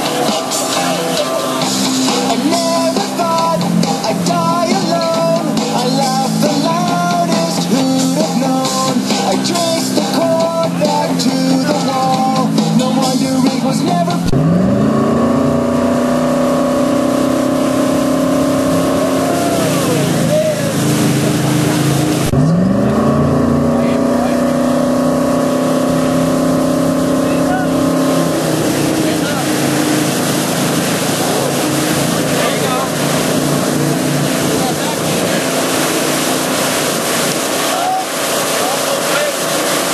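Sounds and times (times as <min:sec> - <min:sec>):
motorboat engine revving: 0:00.0 - 0:39.9
hiss of boat wake: 0:16.2 - 0:22.3, 0:24.0 - 0:39.9.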